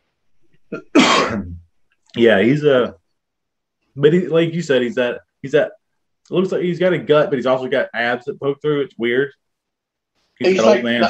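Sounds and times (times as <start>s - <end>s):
person clearing throat: 0.7s - 1.6s.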